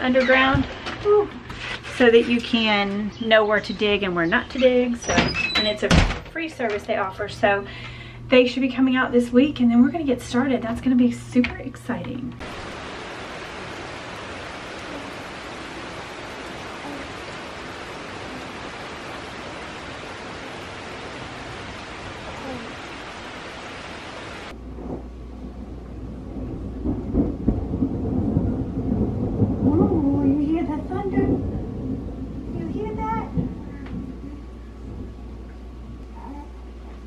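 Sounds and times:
heavy rain pouring: 0:12.4 - 0:37.0
low thunder rumble: 0:12.4 - 0:37.0.

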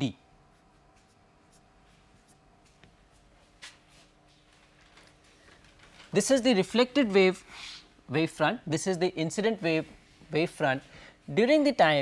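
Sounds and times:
marker pen scratching on whiteboard: 0:00.8 - 0:02.5.

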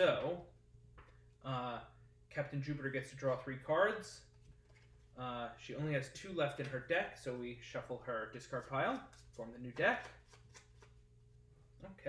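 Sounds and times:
cards being shuffled: 0:08.4 - 0:11.0.

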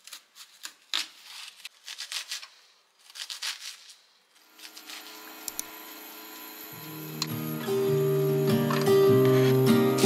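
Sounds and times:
induction hob hum and fan: 0:04.5 - 0:10.0
background music: 0:06.8 - 0:10.0.

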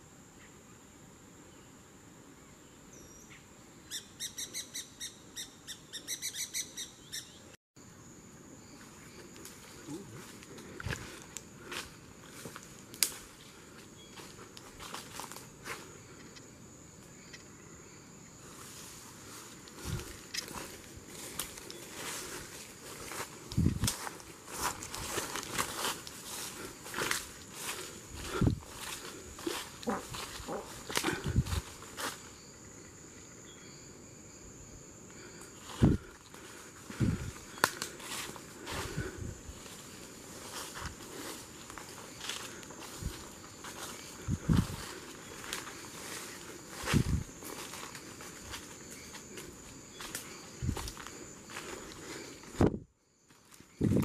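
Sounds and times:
high insect drone: 0:00.0 - 0:54.0
parakeet calling: 0:03.9 - 0:07.4
footsteps through leaves and twigs: 0:08.8 - 0:16.0, 0:18.4 - 0:32.4, 0:35.6 - 0:54.0.

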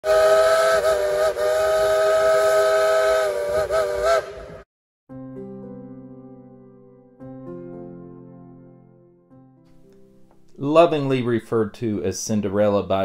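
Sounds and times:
steam locomotive whistle: 0:00.0 - 0:04.6
soft music: 0:05.1 - 0:13.0.

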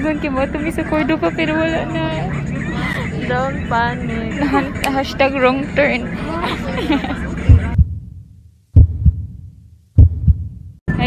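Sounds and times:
muffled bus noise: 0:00.0 - 0:08.0
heartbeat thumps: 0:07.0 - 0:10.8.

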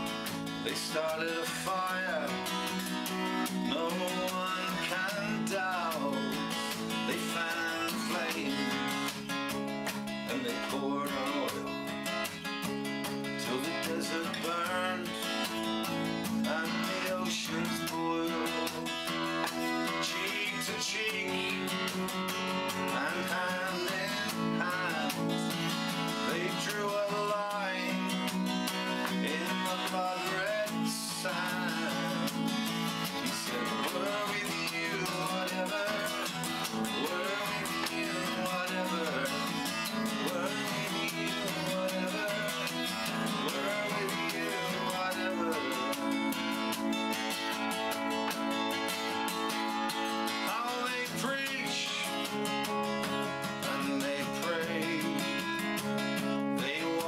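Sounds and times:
man singing: 0:00.0 - 0:47.9, 0:48.9 - 0:57.0
acoustic guitar strummed: 0:00.0 - 0:57.0.

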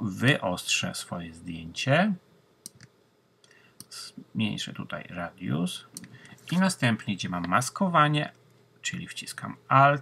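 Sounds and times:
computer mouse clicks: 0:02.6 - 0:03.0, 0:05.9 - 0:06.4.

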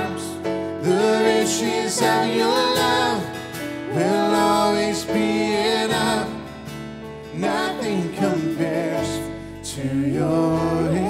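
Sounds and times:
voices singing: 0:00.0 - 0:06.7, 0:07.3 - 0:11.0
band guitars and keyboard: 0:00.0 - 0:11.0.

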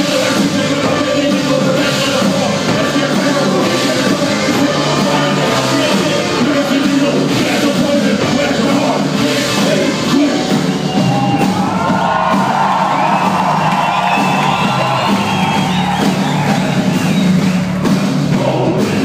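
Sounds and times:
live rock band playing: 0:00.0 - 0:19.0
audience cheering and whooping: 0:10.4 - 0:18.1.

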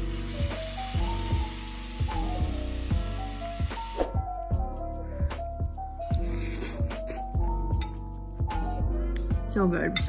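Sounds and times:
vegetables sizzling in a frying pan: 0:00.0 - 0:04.0
background music with steady beat: 0:00.0 - 0:10.0.

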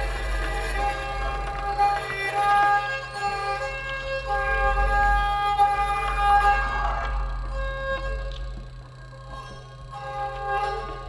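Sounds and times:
steady low drone: 0:00.0 - 0:11.0
sustained ringing tones: 0:00.0 - 0:11.0.

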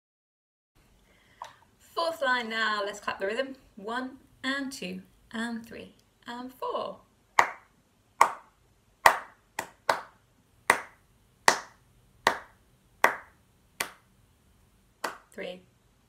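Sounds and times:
hands clapping a rhythm: 0:07.4 - 0:14.1, 0:15.0 - 0:15.4.

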